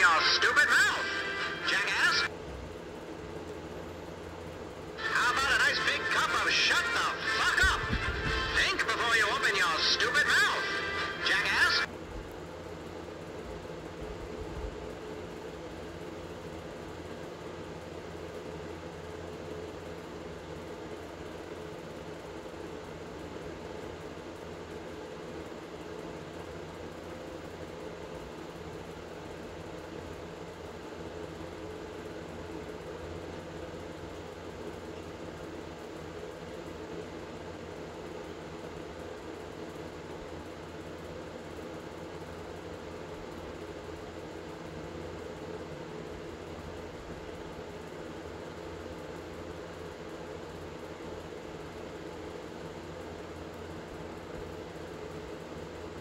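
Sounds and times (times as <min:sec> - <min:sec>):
room hum and hiss: 0:00.0 - 0:56.0.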